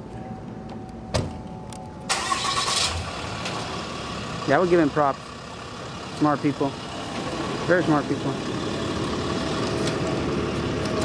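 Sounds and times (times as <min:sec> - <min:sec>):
vehicle engine cranking and starting: 0:02.1 - 0:11.0.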